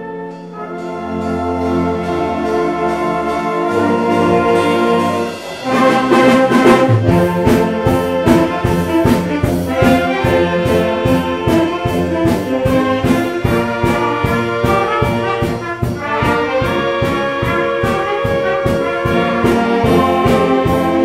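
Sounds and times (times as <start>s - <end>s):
violins and brass playing: 0.0s - 21.0s
steady beat: 3.8s - 21.0s.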